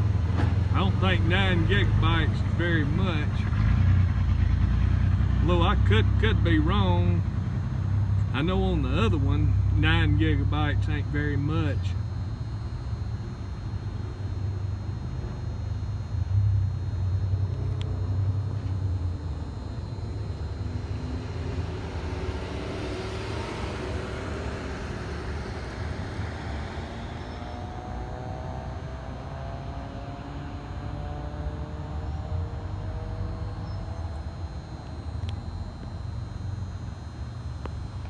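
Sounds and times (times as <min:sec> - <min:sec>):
vehicle passing by: 0:00.0 - 0:10.6, 0:20.2 - 0:34.5
low engine rumble: 0:00.0 - 0:38.0.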